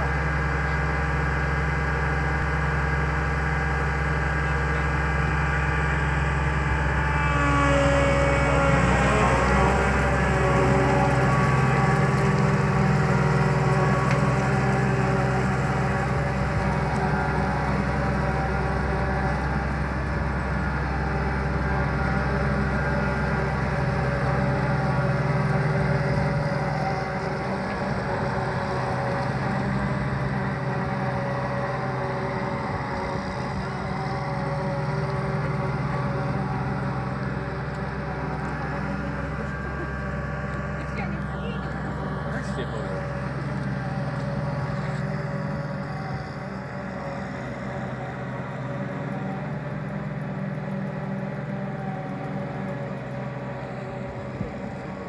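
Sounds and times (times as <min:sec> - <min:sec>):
combine harvester diesel engine: 0:00.0 - 0:55.0.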